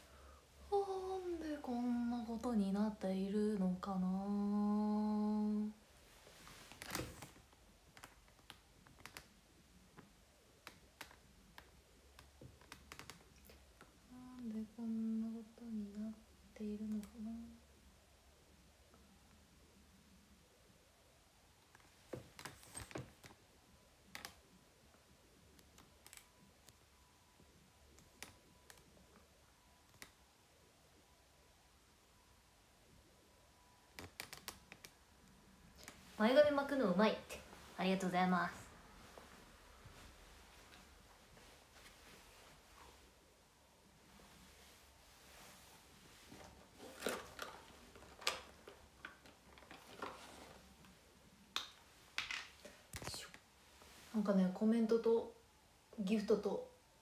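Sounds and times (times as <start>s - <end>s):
woman humming a tune: 0.7s - 5.7s, 14.1s - 17.6s
light irregular clicks and taps: 6.7s - 14.5s, 27.9s - 30.2s, 33.9s - 36.0s.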